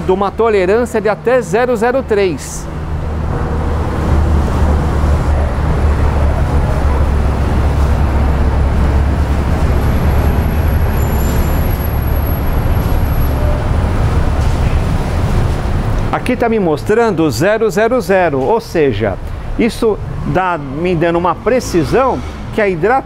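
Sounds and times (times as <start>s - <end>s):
heavy vehicle engine rumbling: 0.0s - 23.0s
road traffic: 0.0s - 23.0s.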